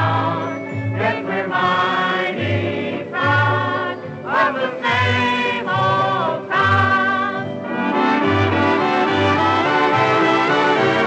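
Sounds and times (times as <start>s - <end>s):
vocal chorus harmonizing: 0.0s - 11.0s
dance orchestra playing waltz: 3.3s - 11.0s.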